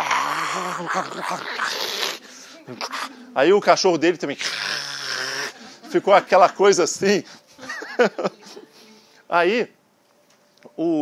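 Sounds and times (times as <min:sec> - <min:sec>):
man imitating dog growl: 0:00.0 - 0:03.2, 0:04.4 - 0:05.6.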